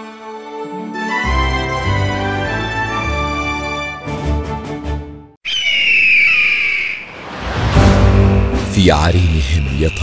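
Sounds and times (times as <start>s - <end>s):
bird of prey screech: 5.4s - 7.1s.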